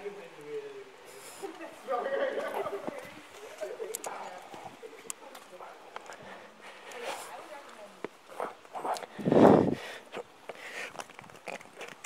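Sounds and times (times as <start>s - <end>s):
person breathing with strain: 8.8s - 11.1s
taps and scrapes against rock: 10.4s - 12.0s.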